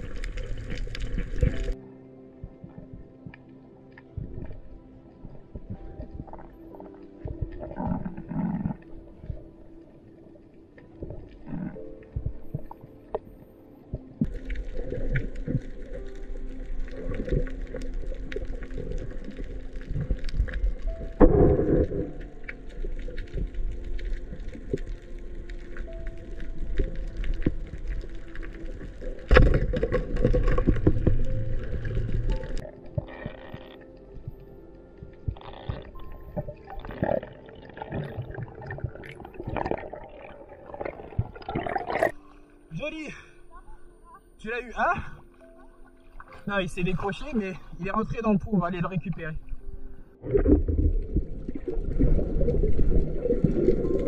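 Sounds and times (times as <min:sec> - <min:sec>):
background music: 0:00.0 - 0:54.0
underwater bubbling: 0:00.0 - 0:54.0.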